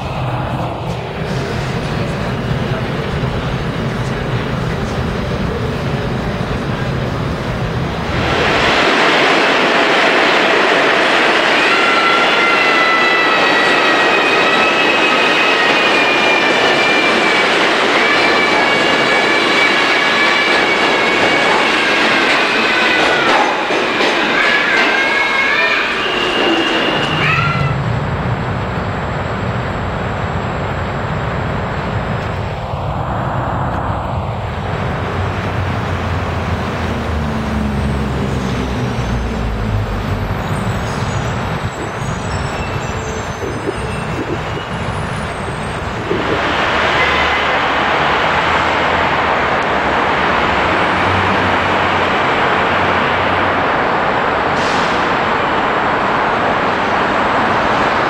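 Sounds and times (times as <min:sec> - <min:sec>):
road traffic noise: 0:00.0 - 0:11.9, 0:12.8 - 0:58.0
subway train squealing: 0:00.0 - 0:58.0
train rumble: 0:00.0 - 0:58.0
low vehicle rumble: 0:27.8 - 0:42.0.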